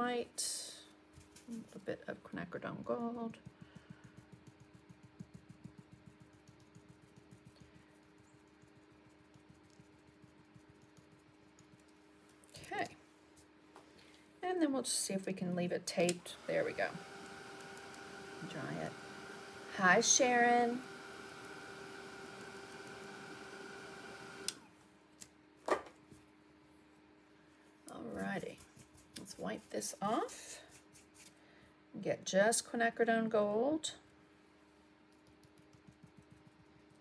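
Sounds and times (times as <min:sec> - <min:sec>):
stencil brush tapping: 0:03.0 - 0:12.0, 0:35.1 - 0:37.0
heat tool fan whirring: 0:15.9 - 0:24.7.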